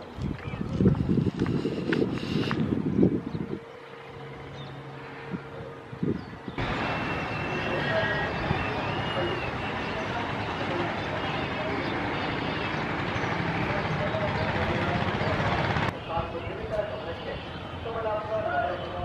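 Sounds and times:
outdoor noise rushing: 0.0s - 19.0s
indistinct voices: 6.6s - 19.0s.

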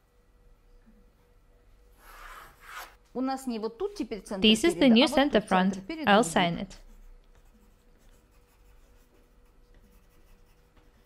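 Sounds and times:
woman speaking: 3.2s - 6.9s
pencil scratching on paper: 6.6s - 11.0s.

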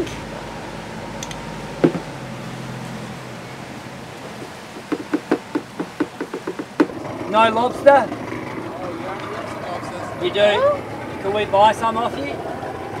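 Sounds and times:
low hum: 0.0s - 5.7s
knock: 1.8s - 2.0s, 4.7s - 7.0s
hands patting fish: 4.4s - 7.0s.

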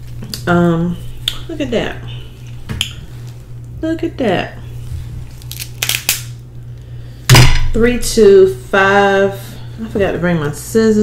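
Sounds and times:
crab shell cracking: 5.4s - 6.4s.

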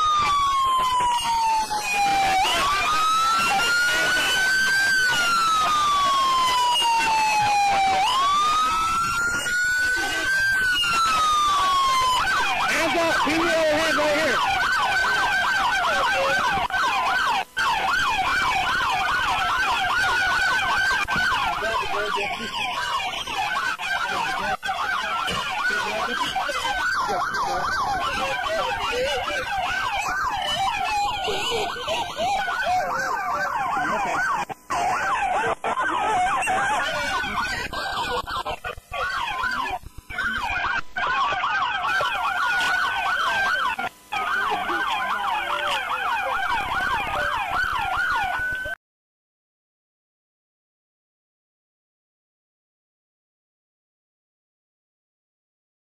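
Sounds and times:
police siren wailing and yelping: 0.0s - 48.8s.

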